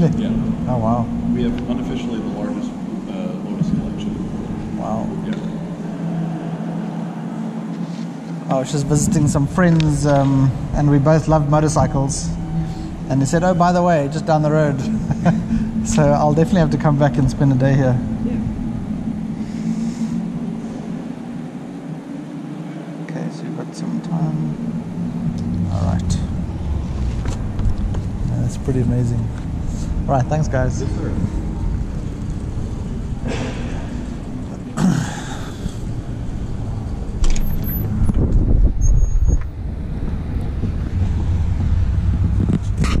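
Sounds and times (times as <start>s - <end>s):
steady low drone: 0.0s - 43.0s
wind buffeting microphone: 35.5s - 43.0s.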